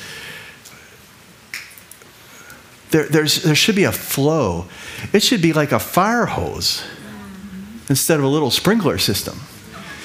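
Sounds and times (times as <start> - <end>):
echoing voice: 2.9 - 10.0.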